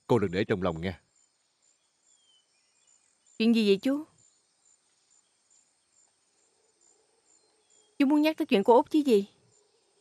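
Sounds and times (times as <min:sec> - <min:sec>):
faint cricket chirping: 0:00.0 - 0:10.0.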